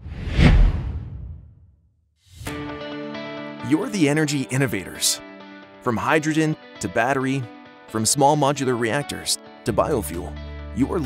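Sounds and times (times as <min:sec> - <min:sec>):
whoosh: 0:00.0 - 0:01.7.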